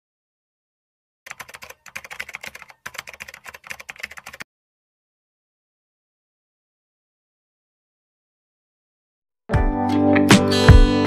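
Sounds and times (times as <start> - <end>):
keyboard key clicks: 1.3 - 4.4.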